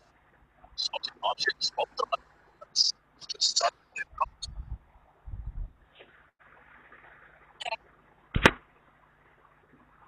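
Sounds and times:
sharp click: 0:08.4 - 0:08.6.

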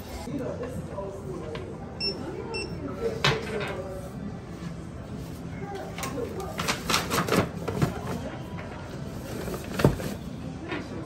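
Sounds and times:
shop background music: 0:00.0 - 0:11.0
items handled on checkout counter: 0:05.7 - 0:11.0.

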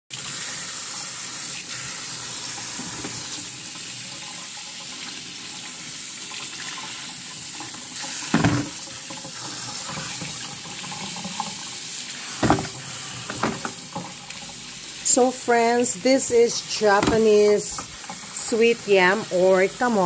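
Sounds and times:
sweet potatoes rinsed by hand: 0:00.1 - 0:20.0
tap running into metal sink: 0:07.7 - 0:11.7, 0:12.3 - 0:14.6, 0:16.3 - 0:18.4.

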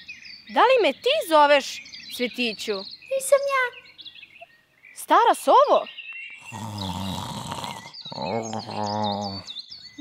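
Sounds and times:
small bird chirps: 0:00.0 - 0:10.0
low snores: 0:06.4 - 0:09.5.

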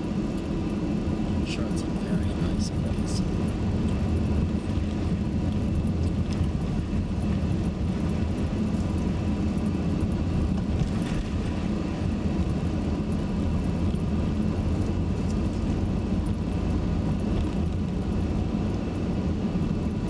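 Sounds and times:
car interior road rumble: 0:00.0 - 0:20.0.

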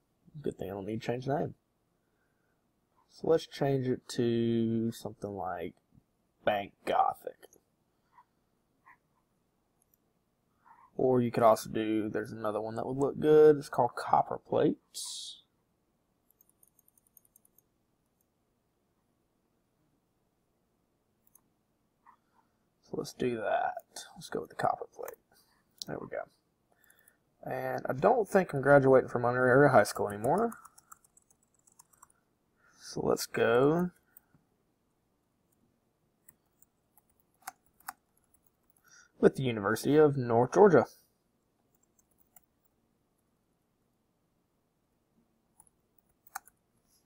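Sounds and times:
computer mouse clicking: 0:16.2 - 0:18.3, 0:29.9 - 0:32.2, 0:36.2 - 0:38.8, 0:41.7 - 0:42.7, 0:45.6 - 0:46.6.

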